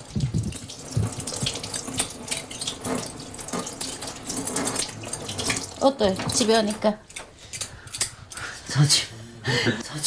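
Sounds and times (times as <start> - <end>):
kitchen noise: 0.0 - 9.1.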